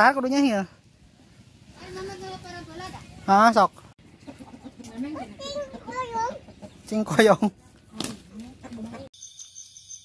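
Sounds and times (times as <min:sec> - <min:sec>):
chicken calling: 0:04.0 - 0:09.1.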